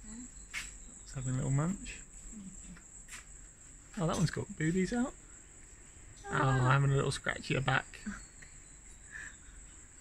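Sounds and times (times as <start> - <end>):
soft chirp: 0.0 - 2.8, 5.6 - 10.0
high-pitched insect trill: 0.0 - 10.0.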